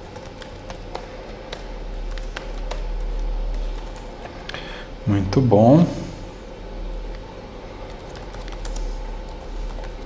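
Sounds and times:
computer keyboard keys clicking: 0.0s - 4.3s, 7.8s - 10.0s
steady low hum: 0.0s - 10.0s.

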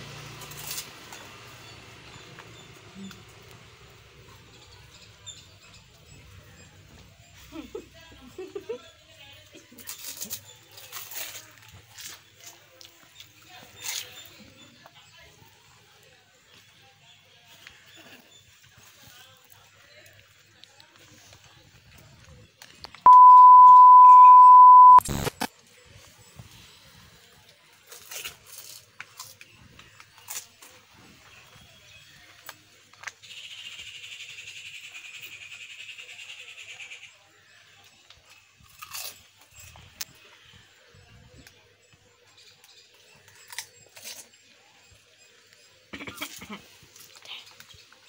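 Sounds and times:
steady electronic beep: 23.1s - 25.3s.

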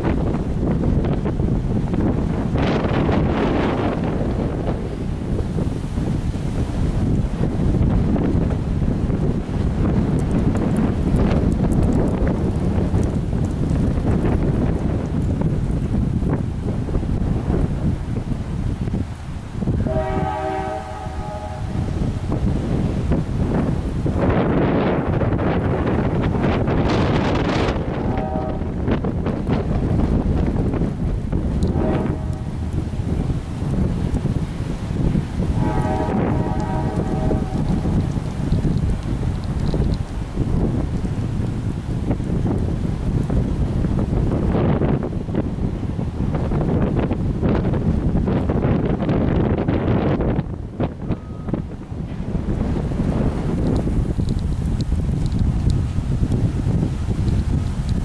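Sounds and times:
wind rushing on microphone: 0.0s - 58.0s
horn blasts: 19.8s - 22.1s, 28.0s - 28.8s, 31.7s - 32.7s, 35.6s - 38.0s.

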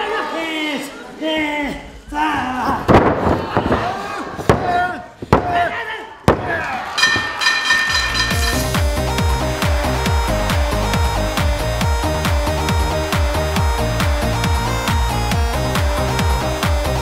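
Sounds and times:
ring bell struck rapidly: 7.0s - 8.9s
electronic entrance music: 7.0s - 17.0s.

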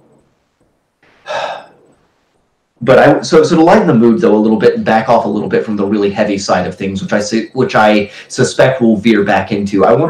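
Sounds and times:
man speaking: 2.8s - 10.0s.

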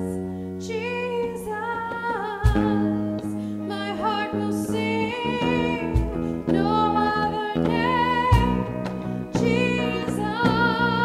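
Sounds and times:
woman singing: 0.0s - 11.0s
worship band playing: 2.4s - 11.0s.

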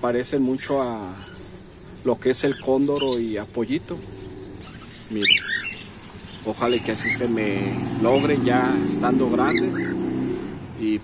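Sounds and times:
cockatiel chirping call: 2.4s - 3.4s, 4.6s - 6.0s, 6.7s - 7.3s.

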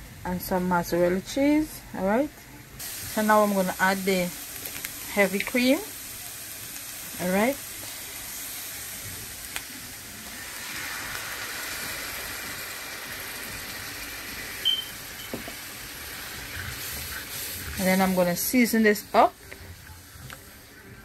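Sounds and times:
food sizzling in a skillet: 2.8s - 20.9s.

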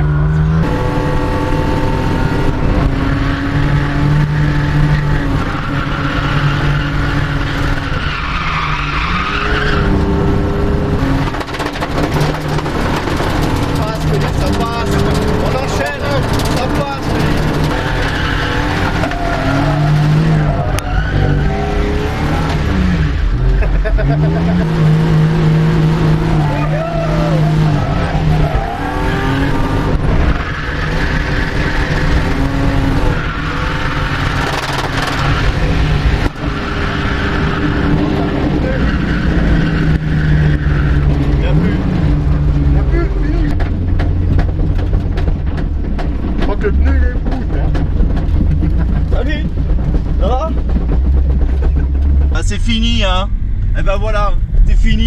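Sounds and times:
car engine revving: 0.0s - 55.0s
tyres squealing: 12.2s - 22.6s, 26.3s - 35.8s.

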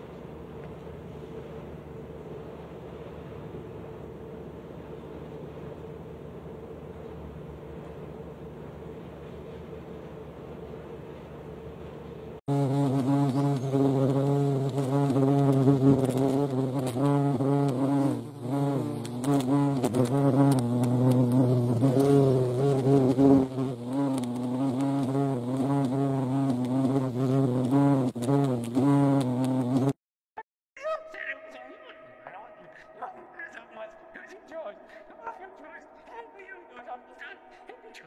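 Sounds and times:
hornets buzzing: 12.5s - 30.0s, 31.2s - 38.0s.

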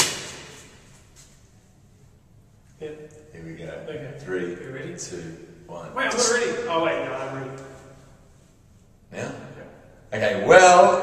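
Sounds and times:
sharp bang echoing in stairwell: 0.0s - 0.9s.

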